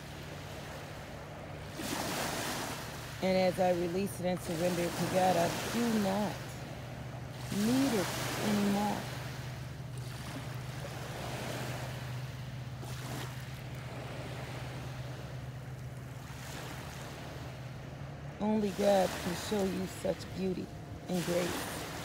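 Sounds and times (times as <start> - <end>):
sea waves washing: 0.0 - 22.0
steady low hum: 0.0 - 22.0.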